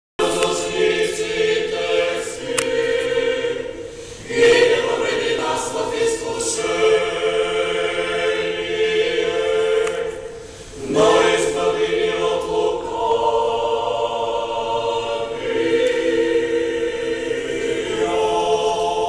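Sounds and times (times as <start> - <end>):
choir singing held notes: 0.2 - 19.0.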